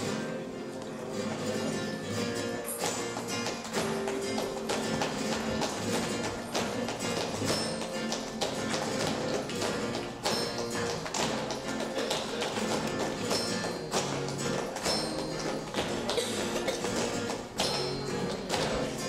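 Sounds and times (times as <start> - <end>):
rhythmic hand clapping: 0.0 - 19.0.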